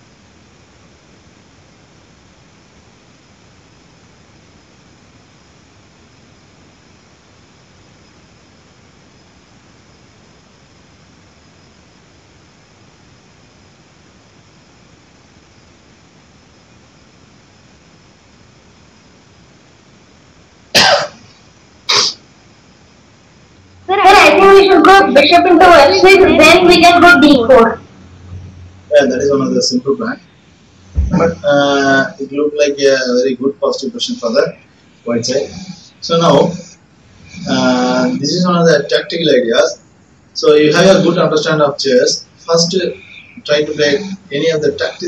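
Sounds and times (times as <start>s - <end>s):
faint steady hiss: 0.0s - 45.0s
person coughing: 20.8s - 21.2s, 21.9s - 22.2s.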